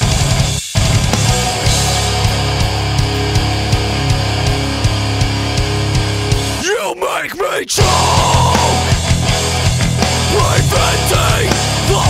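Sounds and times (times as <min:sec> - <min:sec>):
distorted electric guitars: 0:00.0 - 0:12.0
drums beating: 0:00.0 - 0:12.0.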